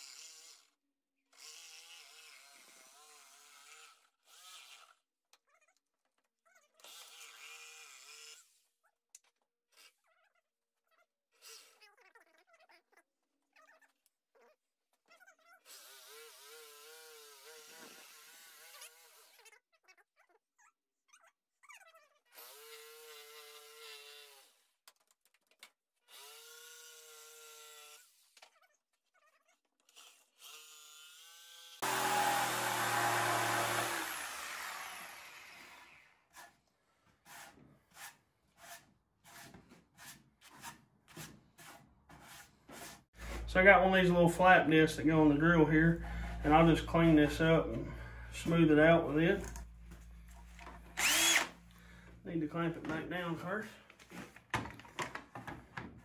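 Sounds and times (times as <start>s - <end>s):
jigsaw cutting wood: 0.0s - 0.7s, 1.3s - 5.0s, 15.7s - 19.4s, 22.4s - 24.6s, 26.1s - 28.2s, 29.9s - 36.6s, 50.6s - 51.7s.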